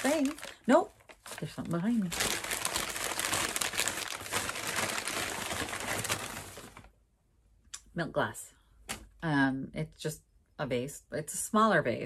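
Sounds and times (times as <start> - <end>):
packing material rustling: 0.0 - 7.0.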